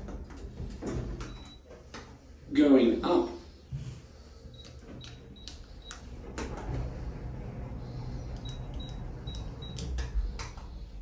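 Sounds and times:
lift ride rumble: 5.2 - 11.0.

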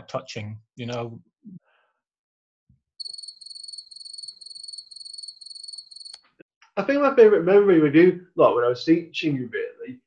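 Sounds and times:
crickets chirping: 3.0 - 6.2.

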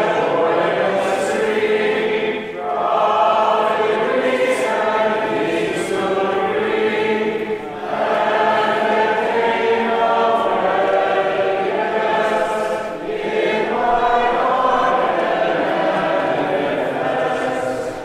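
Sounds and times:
choir singing a hymn: 0.0 - 18.0.

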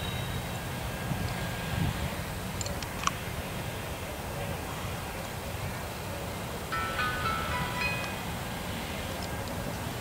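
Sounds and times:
wheels squealing against rail: 0.0 - 0.6
freight train rumbling: 0.0 - 10.0.

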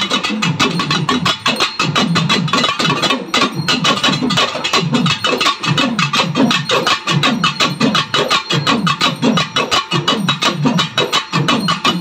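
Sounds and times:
folk drums in fast rhythm: 0.0 - 12.0.

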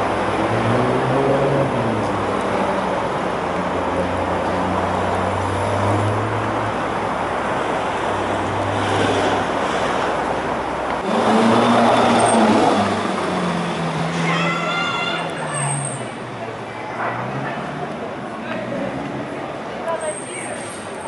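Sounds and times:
car engines in street traffic: 0.0 - 21.0.

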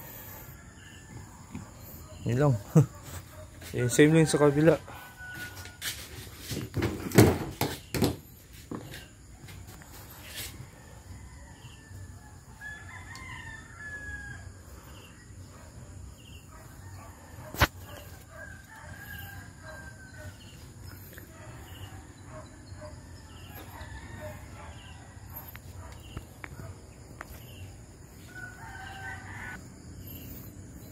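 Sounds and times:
rooster crowing: 3.8 - 6.2, 10.3 - 14.6, 16.5 - 20.6, 22.8 - 25.5, 28.2 - 29.7.

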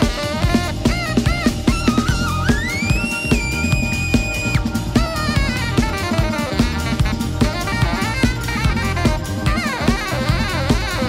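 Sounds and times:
bass: 0.0 - 11.0
drum kit: 0.0 - 11.0
saxophone solo: 0.0 - 11.0.

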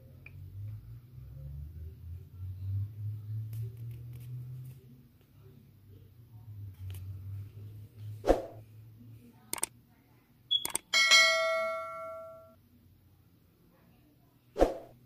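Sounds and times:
bell ding: 10.5 - 12.6.

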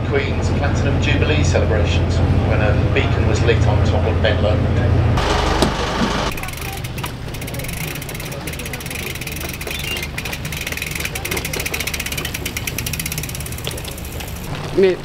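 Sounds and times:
bicycle fine ticking: 5.2 - 15.0.

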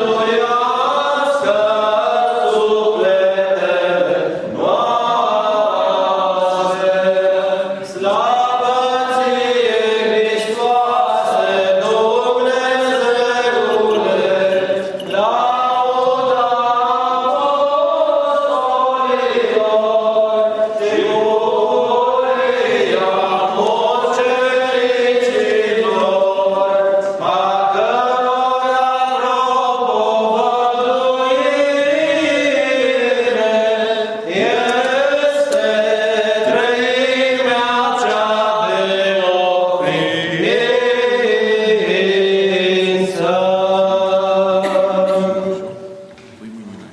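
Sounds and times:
voices chanting liturgically: 0.0 - 46.6.

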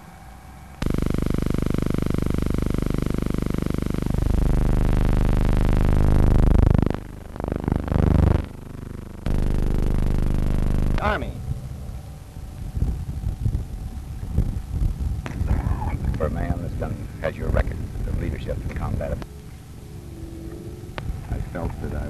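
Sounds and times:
people talking: 11.0 - 11.4, 15.3 - 19.2, 21.2 - 22.0
plane passing overhead: 11.2 - 15.2, 15.9 - 22.0.

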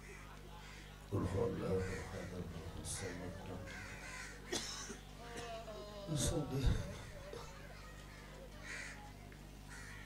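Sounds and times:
crow cawing: 0.0 - 4.5, 7.1 - 9.1, 9.7 - 10.0
low electrical hum: 0.0 - 10.0.

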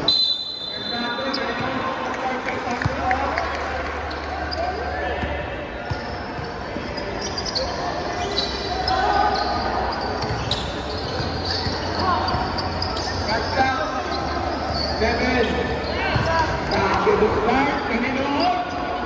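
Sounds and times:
people talking: 6.9 - 18.8.

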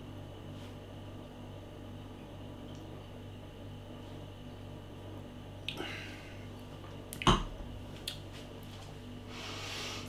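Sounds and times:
low room hum: 0.0 - 10.0
breath: 9.3 - 10.0.

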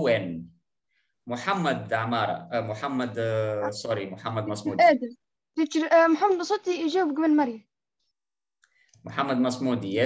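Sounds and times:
person speaking: 3.2 - 5.2.

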